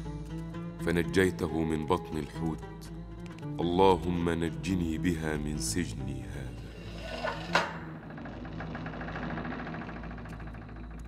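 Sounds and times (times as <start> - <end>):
wooden door creaking open: 6.5 - 11.0.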